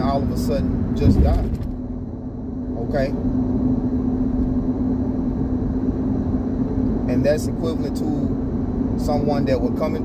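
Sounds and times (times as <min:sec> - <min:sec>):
car cabin rumble: 0:00.0 - 0:05.4
constant hum: 0:00.0 - 0:10.0.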